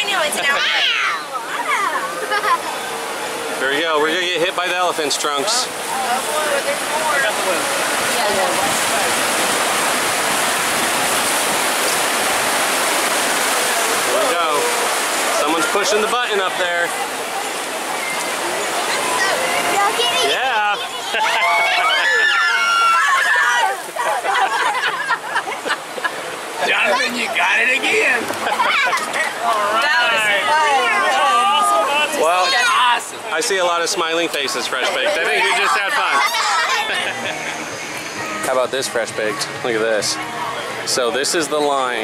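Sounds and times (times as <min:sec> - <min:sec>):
rushing white water: 0:00.0 - 0:42.0
people calling out: 0:18.4 - 0:25.2, 0:34.9 - 0:38.4.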